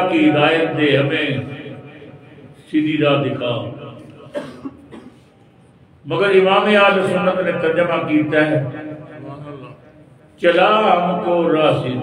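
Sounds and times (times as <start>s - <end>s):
man coughing: 4.2s - 5.4s.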